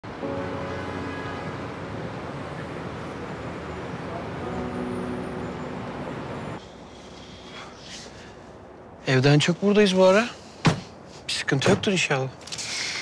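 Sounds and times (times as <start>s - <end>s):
city traffic road noise: 0.0s - 13.0s.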